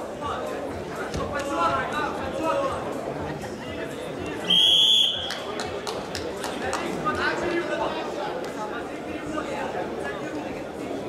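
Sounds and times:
voices and shouts in a hall: 0.0 - 11.0.

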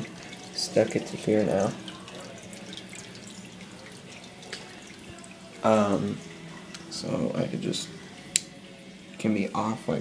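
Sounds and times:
water drips and splashes: 0.0 - 7.0
aquarium water trickling: 0.0 - 10.0.

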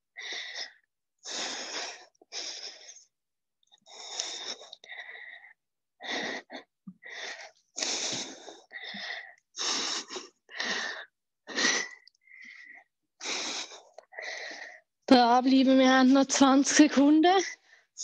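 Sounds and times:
person breathing hard: 0.2 - 3.1, 3.8 - 14.9.

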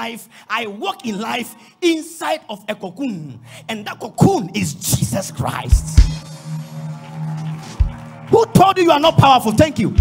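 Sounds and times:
low organ-like keyboard note: 3.5 - 9.2.

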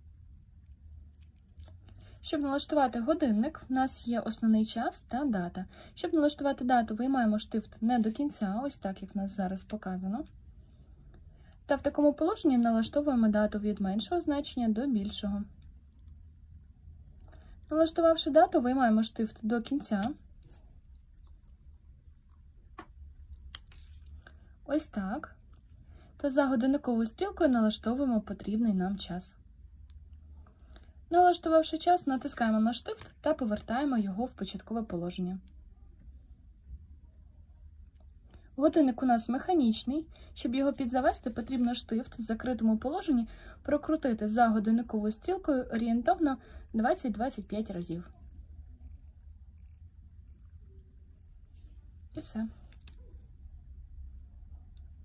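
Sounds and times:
low steady hum: 0.0 - 55.0
watch winding ticking: 0.6 - 2.0, 19.9 - 24.3, 46.4 - 53.4
wristwatch crown clicks: 20.0 - 24.2, 48.1 - 53.4.

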